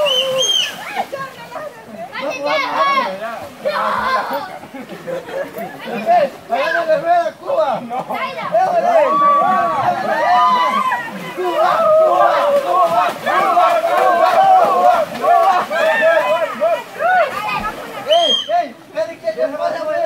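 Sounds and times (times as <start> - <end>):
people chattering and calling out: 0.0 - 20.0.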